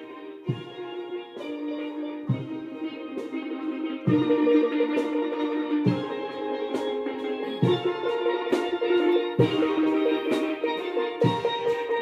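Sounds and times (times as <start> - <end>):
steady drum beat: 0.0 - 12.0
steel pan chords: 0.0 - 12.0.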